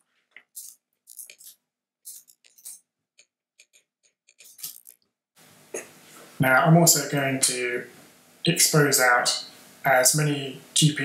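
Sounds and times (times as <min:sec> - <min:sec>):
keyboard and mouse clicks: 0:02.1 - 0:05.0.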